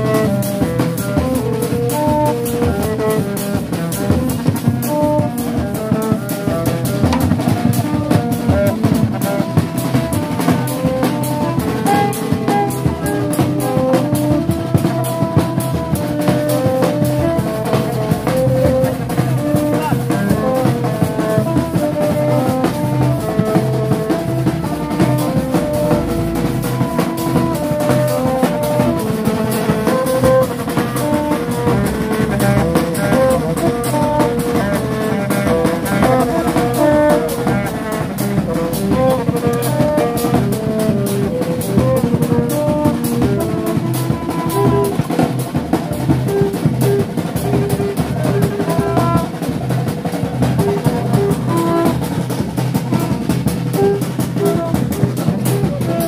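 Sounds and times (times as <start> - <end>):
street band drums and trumpets: 0.0 - 56.0.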